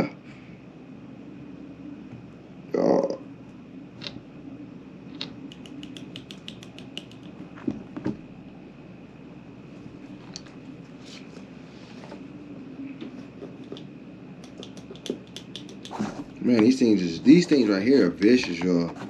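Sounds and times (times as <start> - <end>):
steady low hum: 0.0 - 19.0
quick light clicks: 13.7 - 16.0.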